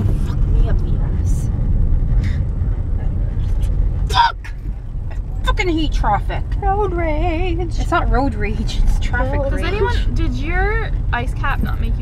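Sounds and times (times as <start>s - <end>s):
car engine rumble: 0.0s - 12.0s
road noise in car cabin: 0.0s - 12.0s.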